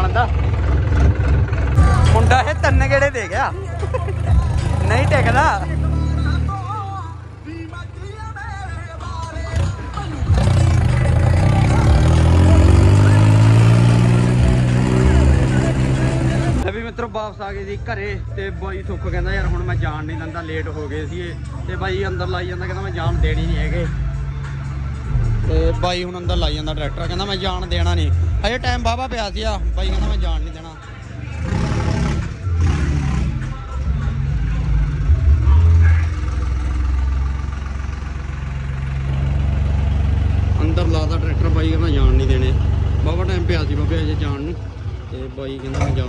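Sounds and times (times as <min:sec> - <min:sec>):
tractor diesel engine revving: 0:00.0 - 0:17.0, 0:20.9 - 0:46.0.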